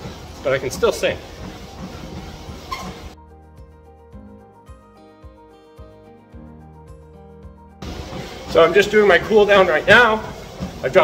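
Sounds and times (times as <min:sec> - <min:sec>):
running footfalls: 0:00.0 - 0:03.2, 0:07.8 - 0:11.0
treadmill belt: 0:00.0 - 0:03.2, 0:07.8 - 0:11.0
music with steady beat: 0:00.0 - 0:11.0.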